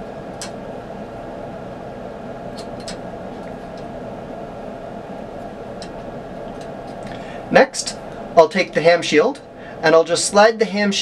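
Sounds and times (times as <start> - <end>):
room noise hum: 0.0 - 11.0.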